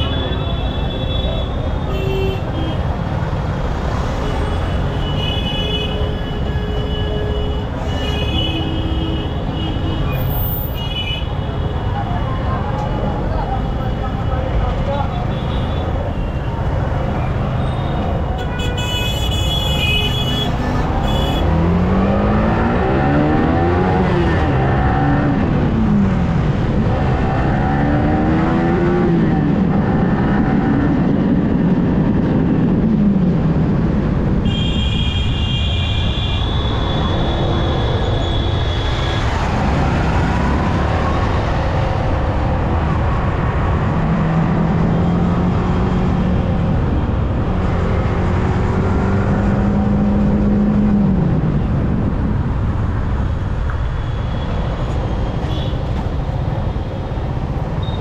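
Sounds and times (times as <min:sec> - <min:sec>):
traffic: 0:00.0 - 0:58.0.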